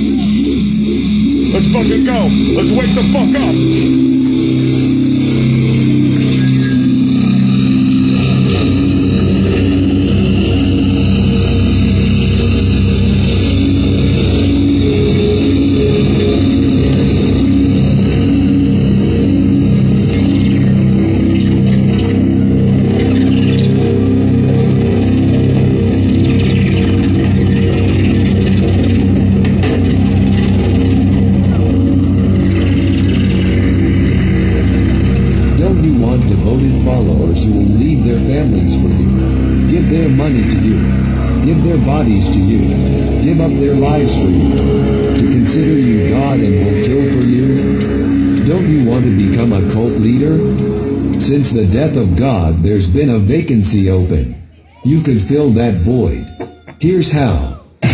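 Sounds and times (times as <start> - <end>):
distorted guitar and bass riffing: 0.0 - 57.9.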